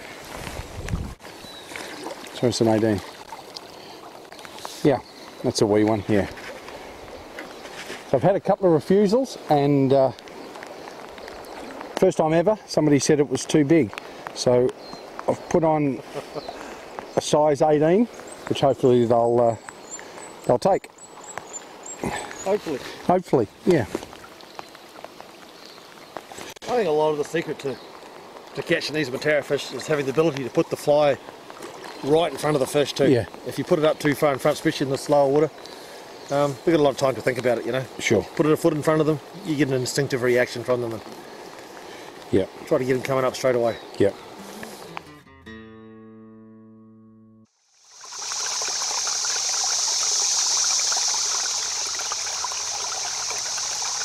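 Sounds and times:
light rain on river: 0.0s - 45.2s, 47.6s - 54.0s
stream rushing water: 0.0s - 45.2s, 47.7s - 54.0s.

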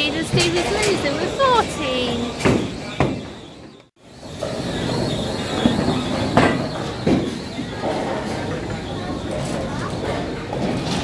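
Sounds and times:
bowling balls rolling on lanes: 0.0s - 11.0s.

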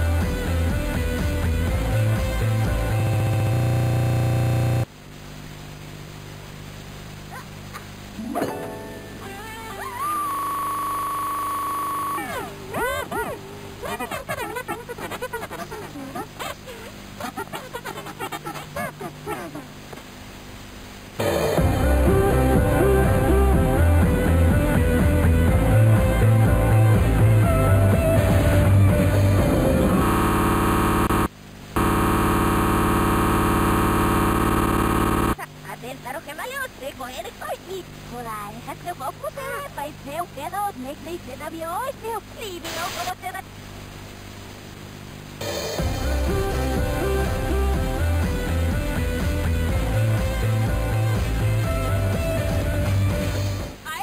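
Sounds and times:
low tape hum: 0.0s - 54.0s
harsh electronic buzz: 1.0s - 4.9s, 25.5s - 35.4s.

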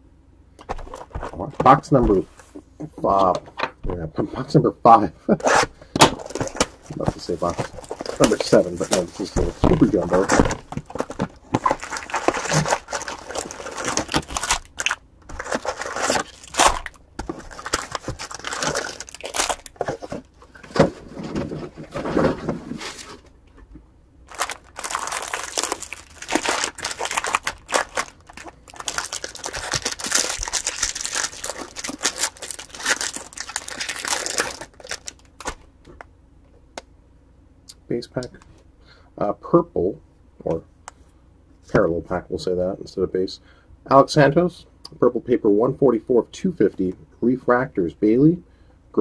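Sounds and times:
foil wrappers crinkling and tearing: 5.5s - 20.3s, 24.3s - 35.6s.

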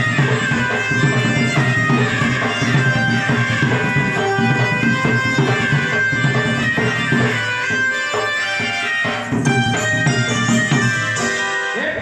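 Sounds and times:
live folk music: 0.0s - 12.0s.

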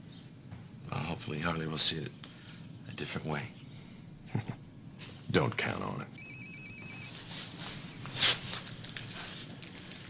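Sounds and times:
cell phone electronic trilling ring: 6.2s - 7.2s.

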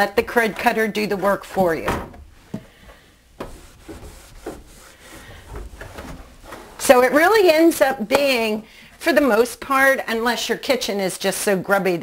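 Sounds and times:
cloth rag rubbing cabinet: 0.0s - 9.6s.

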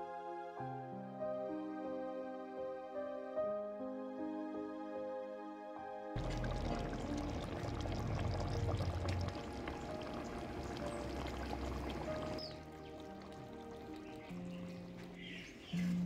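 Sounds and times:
soft instrumental music: 0.0s - 16.0s.

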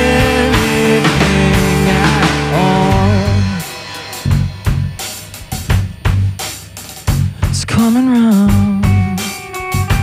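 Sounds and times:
drum hits: 0.0s - 7.8s
rock band playing: 0.0s - 10.0s.

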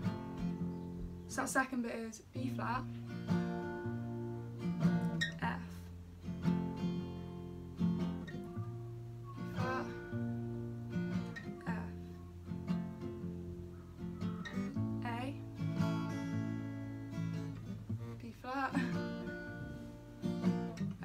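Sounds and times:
acoustic guitar strumming: 0.0s - 1.7s, 2.4s - 21.0s.

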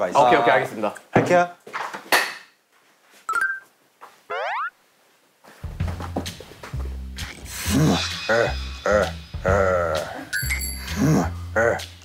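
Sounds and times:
electronic blip rising: 4.3s - 4.7s.

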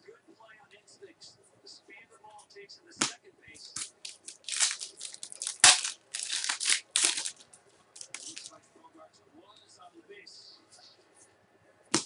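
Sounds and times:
card pack wrappers ripping: 3.8s - 8.5s.

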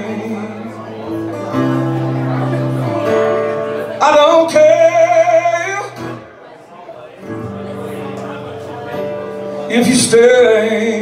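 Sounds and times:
acoustic guitar playing slow song: 0.0s - 11.0s.

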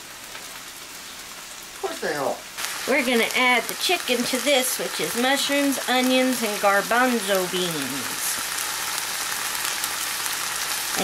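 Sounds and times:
vegetables sizzling in a frying pan: 0.0s - 11.0s.

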